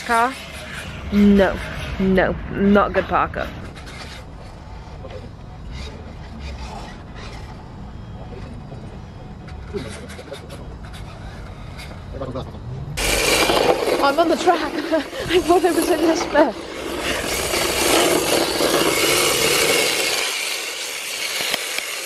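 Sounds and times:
small tyres sliding on tarmac: 0.0 - 22.0
loud rushing road noise: 10.4 - 22.0.

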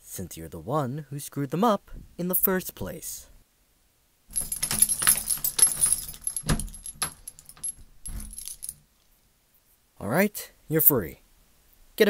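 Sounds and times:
key working a padlock: 4.3 - 8.8
metal chain jangling: 4.3 - 8.8.

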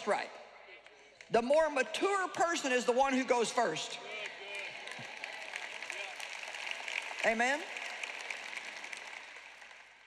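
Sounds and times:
large audience applauding: 4.1 - 10.0.

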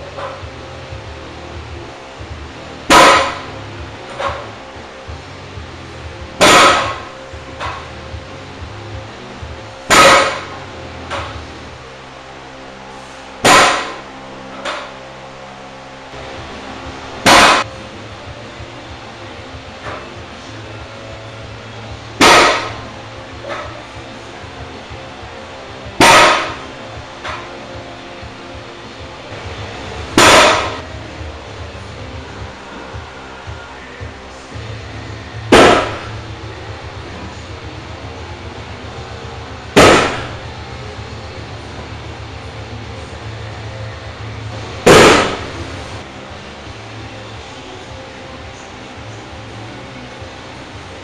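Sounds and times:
barbell clanging on platform: 2.9 - 3.5, 6.4 - 7.9, 9.9 - 11.4, 22.2 - 22.8, 30.2 - 30.8.

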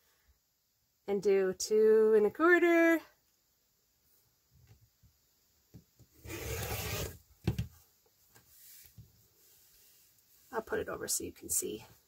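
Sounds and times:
faint handling sounds: 7.7 - 10.9.

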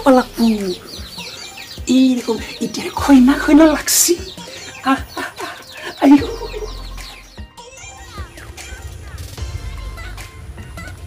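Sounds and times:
chickens clucking: 0.0 - 9.4
small birds chirping: 0.0 - 11.0.

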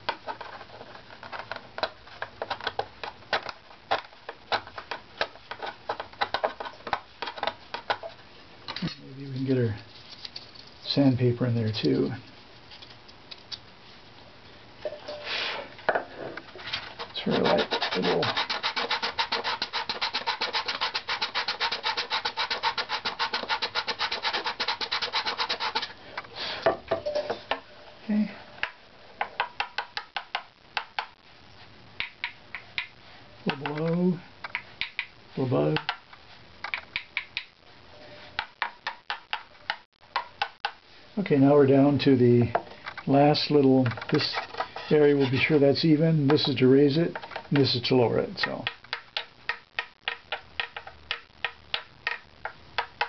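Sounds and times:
scraper scraping wood: 16.6 - 25.9.

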